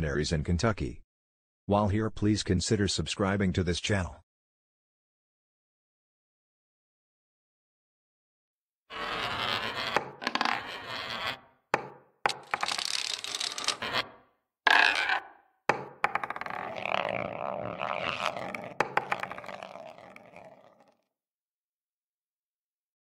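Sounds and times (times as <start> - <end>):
balls rolling and scraping: 8.9 - 21.0
balls knocking as they land: 14.7 - 20.5.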